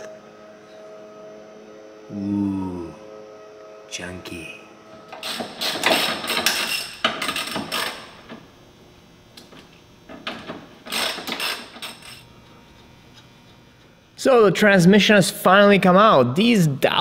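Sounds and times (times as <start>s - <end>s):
ratchet wrench clicking: 5.2s - 8.2s, 10.8s - 12.2s.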